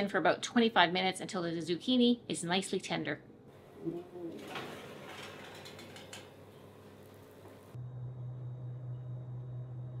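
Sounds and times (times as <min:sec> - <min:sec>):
baking tray sliding out of oven: 0:04.4 - 0:06.2
steady low hum: 0:06.3 - 0:10.0.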